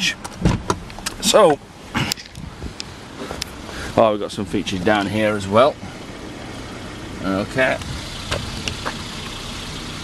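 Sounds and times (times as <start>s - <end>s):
car engine idling: 0.0s - 10.0s
car door clicks and knocks: 0.2s - 1.2s, 8.3s - 9.0s.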